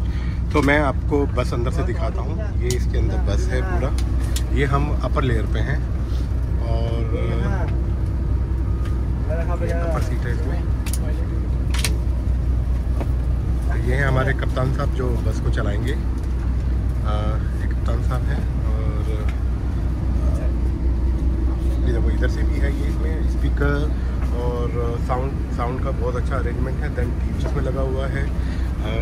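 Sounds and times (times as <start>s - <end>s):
coach engine idling: 0.0s - 29.0s
faint passenger voices: 0.0s - 29.0s
people talking: 0.5s - 7.9s, 9.2s - 11.9s, 13.6s - 16.2s, 16.9s - 19.4s, 20.0s - 20.8s, 21.6s - 29.0s.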